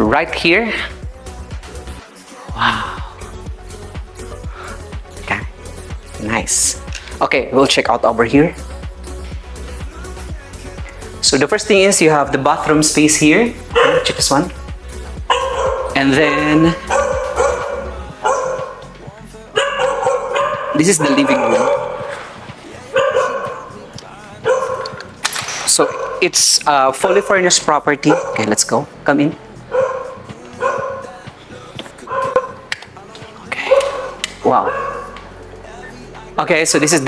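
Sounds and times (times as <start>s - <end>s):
dog barking: 13.7s - 14.4s, 15.3s - 18.9s, 19.5s - 25.1s, 25.8s - 26.4s, 27.0s - 28.6s, 29.7s - 31.2s, 32.1s - 32.7s, 33.6s - 35.2s.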